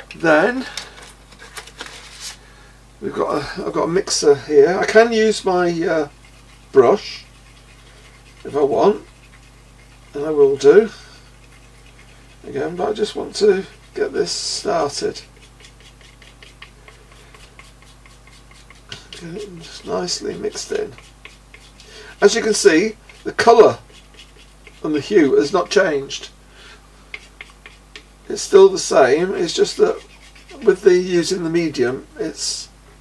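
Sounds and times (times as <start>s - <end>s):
steady low hum: 0.0s - 33.0s
soft rustling: 0.1s - 2.5s
palette knife scraping and tapping: 6.0s - 10.6s, 11.3s - 25.1s, 27.1s - 28.1s, 29.1s - 30.8s.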